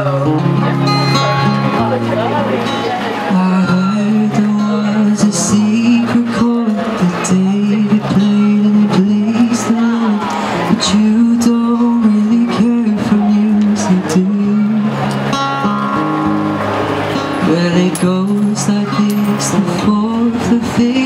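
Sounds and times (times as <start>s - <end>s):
man singing: 0.0s - 1.5s, 3.2s - 15.2s, 17.4s - 21.0s
strummed acoustic guitar: 0.0s - 21.0s.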